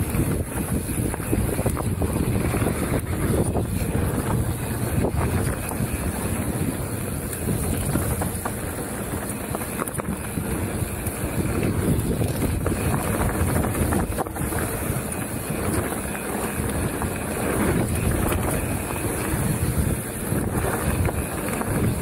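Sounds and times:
bike clicks and rattles: 0:00.0 - 0:22.0
tyres rumbling on dirt: 0:00.0 - 0:22.0
wind buffeting microphone: 0:00.0 - 0:22.0.

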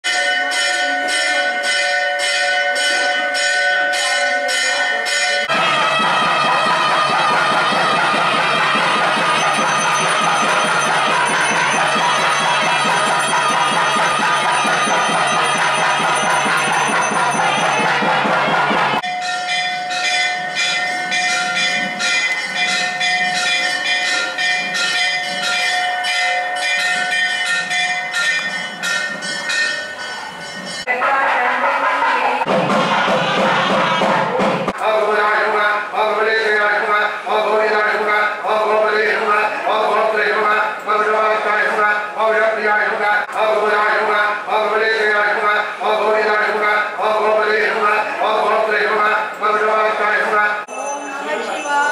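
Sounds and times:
temple bells ringing: 0:00.0 - 0:31.0, 0:50.6 - 0:51.9.

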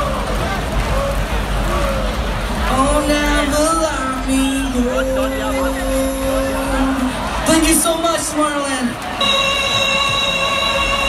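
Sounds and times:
large outdoor crowd noise: 0:00.0 - 0:11.0.

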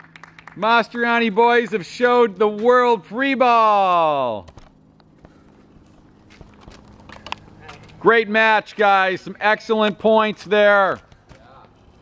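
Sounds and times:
low steady hum: 0:00.0 - 0:12.0
footsteps and shoe scuffs on asphalt: 0:05.0 - 0:08.0.

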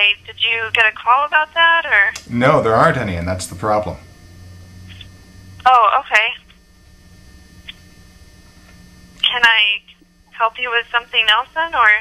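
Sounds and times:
faint line hum: 0:00.0 - 0:12.0.

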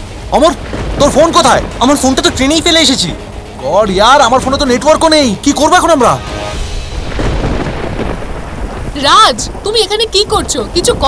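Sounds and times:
low rumble of thunder: 0:00.0 - 0:03.5, 0:06.6 - 0:11.0
heavy rain: 0:00.0 - 0:11.0.

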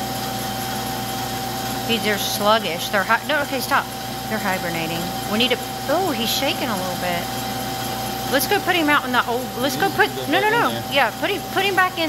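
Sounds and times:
machine humming with whine: 0:00.0 - 0:12.0.

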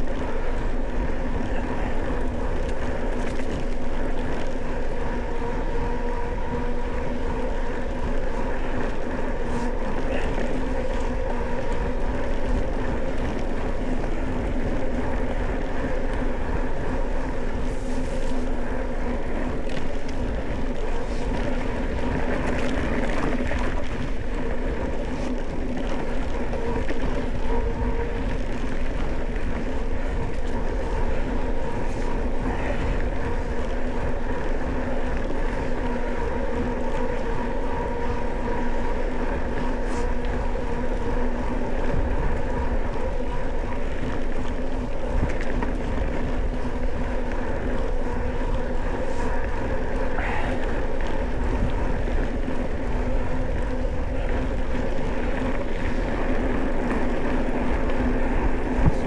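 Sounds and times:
bike tyres rolling on dirt: 0:00.0 - 0:59.0
wind rumbling on microphone: 0:00.0 - 0:59.0.

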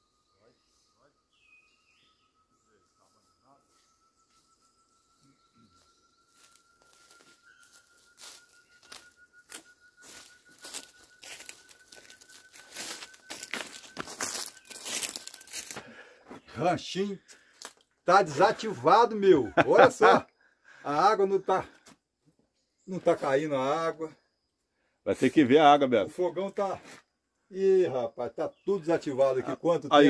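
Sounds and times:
faint thin whistle-like tone: 0:00.0 - 0:16.0
footsteps crunching dry leaves: 0:06.3 - 0:15.9.

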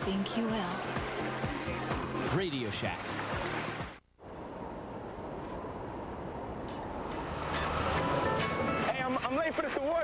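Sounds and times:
background music: 0:00.0 - 0:04.0, 0:07.1 - 0:09.5
truck driving: 0:05.5 - 0:10.0.

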